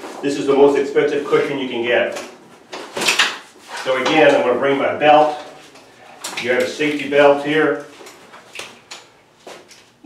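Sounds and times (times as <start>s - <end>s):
strap rustling: 1.2s - 10.0s.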